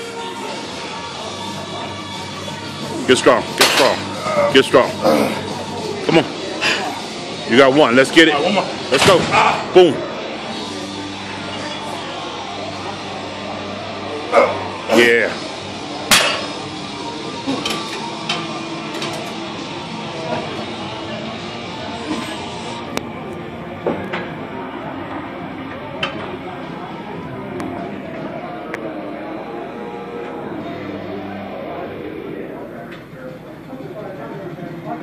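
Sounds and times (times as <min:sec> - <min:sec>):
indistinct voices: 0:00.0 - 0:07.4, 0:10.4 - 0:35.0.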